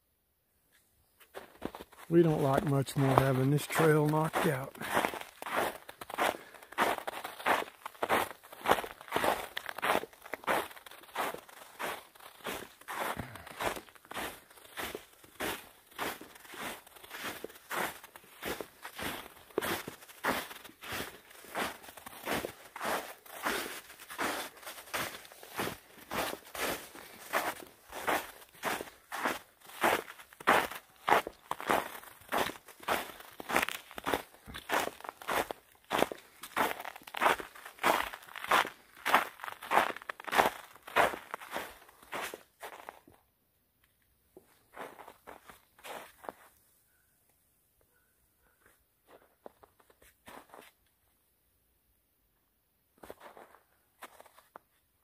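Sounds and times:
footsteps on snow: 0.7 - 43.2, 44.4 - 46.6, 48.6 - 50.8, 53.0 - 54.6.

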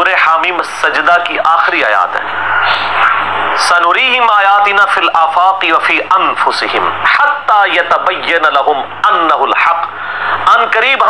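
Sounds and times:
man speaking: 0.0 - 2.3, 3.6 - 11.0.

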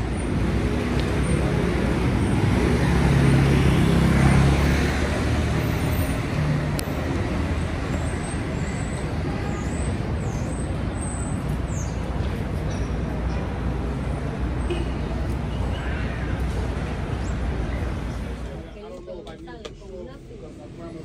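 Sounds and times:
street traffic noise: 0.0 - 21.0.

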